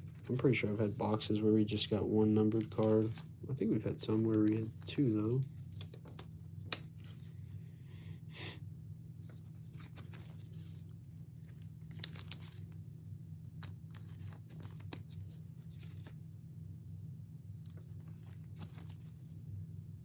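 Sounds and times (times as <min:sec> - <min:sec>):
plastic sleeves rustling: 0:00.0 - 0:07.5, 0:09.2 - 0:12.8, 0:13.4 - 0:16.4, 0:17.5 - 0:19.6.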